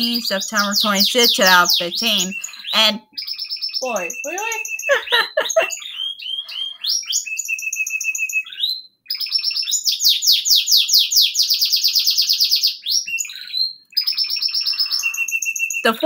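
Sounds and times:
songbird singing: 0.0 - 16.0.

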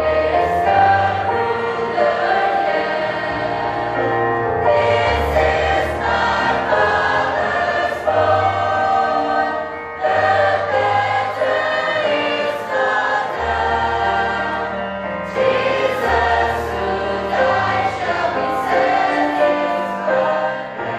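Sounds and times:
choir singing: 0.0 - 20.9.

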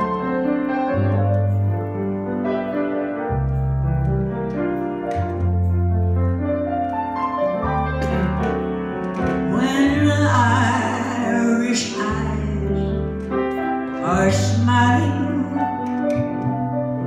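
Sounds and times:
slow piano ballad: 0.0 - 17.0.

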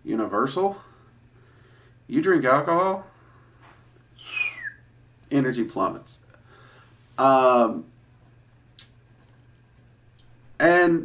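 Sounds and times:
low steady hum: 0.0 - 11.0
man whistling downward: 4.2 - 4.9.

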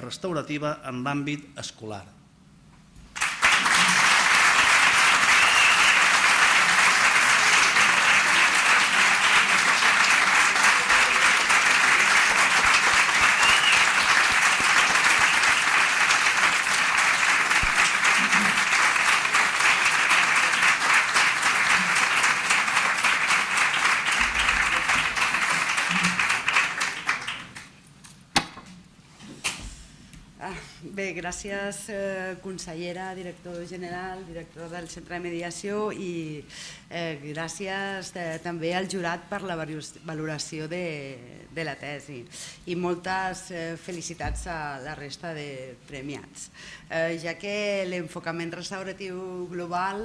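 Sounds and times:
audience applauding: 3.1 - 27.8.

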